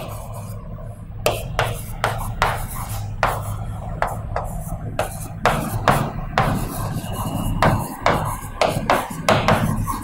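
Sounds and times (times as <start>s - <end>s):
stylus scratching on screen: 0.0s - 10.0s.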